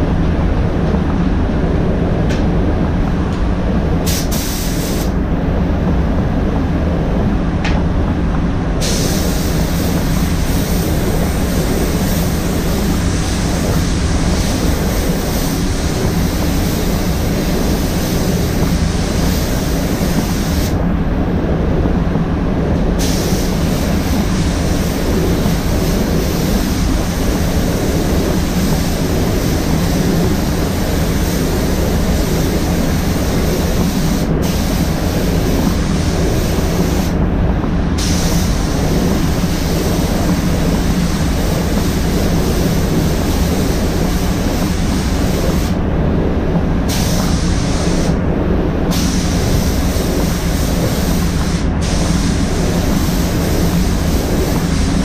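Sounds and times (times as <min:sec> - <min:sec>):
air handling rumble: 0:00.0 - 0:55.0
spray gun hissing: 0:04.0 - 0:05.2, 0:08.8 - 0:20.8, 0:23.0 - 0:37.2, 0:38.0 - 0:45.8, 0:46.8 - 0:48.2, 0:48.9 - 0:55.0.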